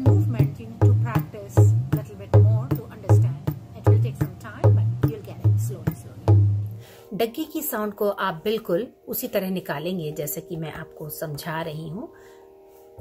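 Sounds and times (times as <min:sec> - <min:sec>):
crisp treble drum strokes: 0:00.0 - 0:06.8.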